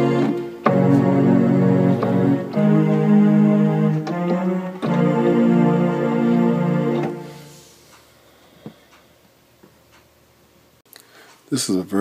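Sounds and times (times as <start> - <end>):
electronic keyboard chords: 0.0 - 7.8.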